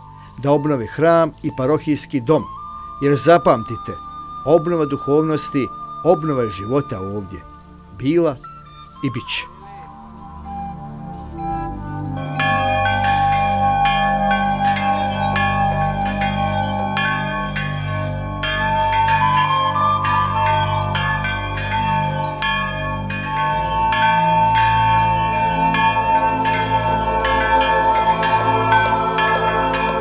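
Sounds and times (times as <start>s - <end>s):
church bells ringing: 2.5s - 8.2s, 11.6s - 30.0s.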